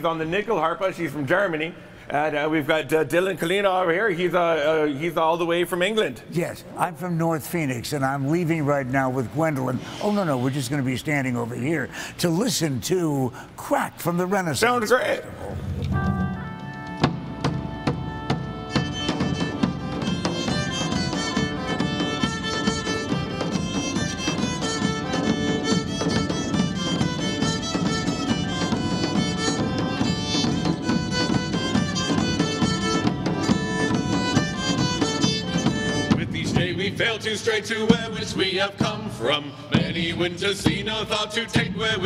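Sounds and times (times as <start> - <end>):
large drums beating: 15.4 - 37.2, 39.8 - 42.0
bagpipe with drones: 15.7 - 36.3.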